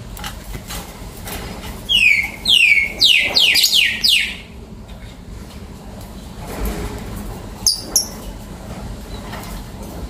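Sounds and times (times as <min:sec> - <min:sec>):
lovebirds screeching: 0:01.9 - 0:04.6.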